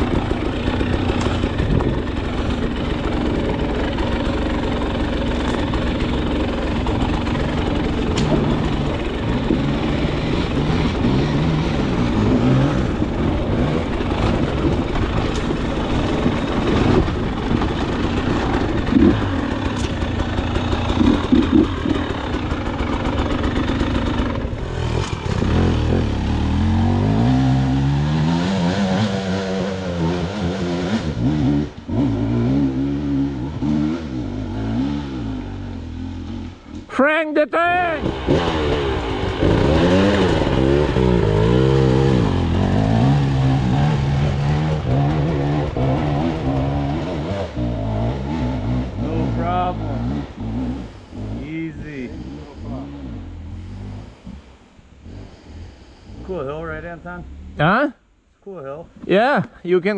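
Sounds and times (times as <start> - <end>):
dirt bike engine revving: 0.0 - 36.5, 37.8 - 57.8.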